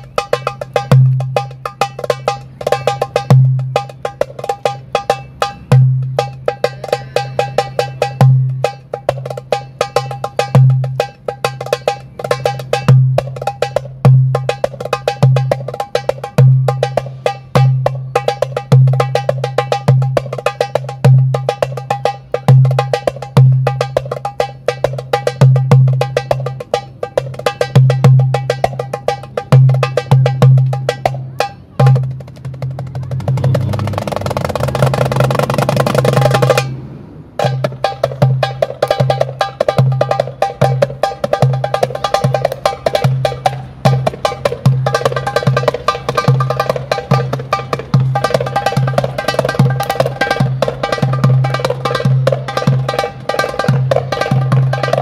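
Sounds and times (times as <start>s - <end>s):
metal goblet drum played by hand: 0.0s - 55.0s.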